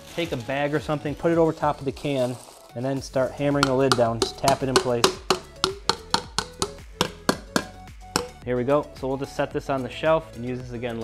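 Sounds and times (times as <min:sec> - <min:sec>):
hammer tapping metal can lid: 0:03.5 - 0:08.4.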